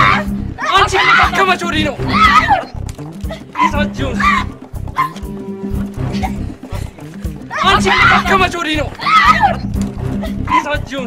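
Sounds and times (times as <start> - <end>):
background music with beat: 0.0 - 11.0
people shouting and crying: 0.0 - 11.0.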